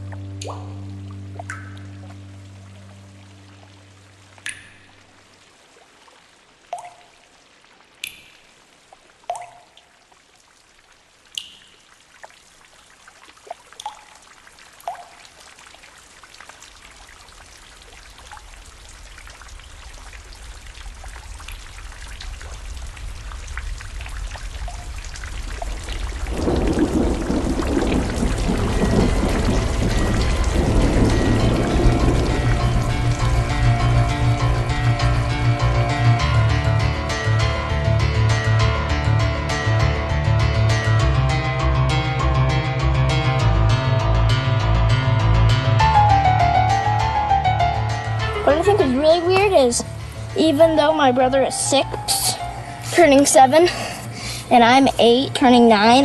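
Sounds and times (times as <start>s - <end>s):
water drops plinking: 0.0s - 2.9s, 4.4s - 5.3s, 6.7s - 7.3s, 8.0s - 10.1s, 11.3s - 12.4s, 13.4s - 15.4s, 24.6s - 25.0s
music: 0.0s - 5.0s, 27.8s - 56.0s
rushing water: 0.0s - 42.0s, 45.8s - 56.0s.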